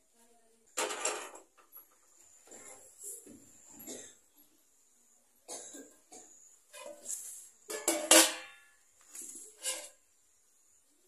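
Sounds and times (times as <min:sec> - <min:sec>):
person coughing: 0:03.8 - 0:04.2, 0:05.5 - 0:06.4.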